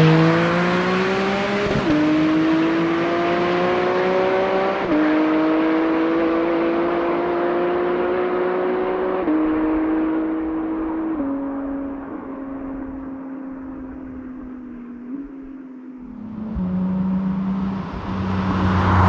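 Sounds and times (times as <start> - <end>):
car engine accelerating hard: 0.0 - 11.9, 16.0 - 19.0.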